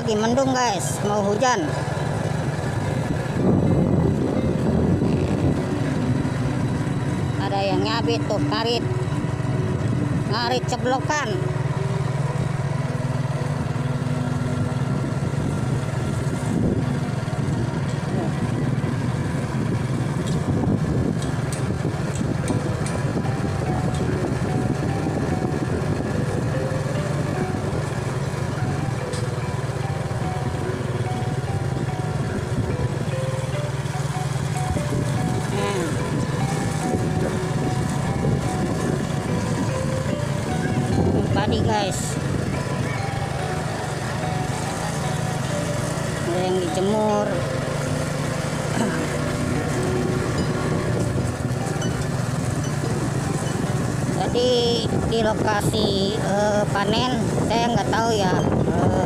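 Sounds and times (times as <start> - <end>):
background music melody: 0.0 - 59.0
small motorcycle engine running: 0.0 - 59.0
wavering voice-like sound: 35.4 - 36.1, 48.7 - 49.6.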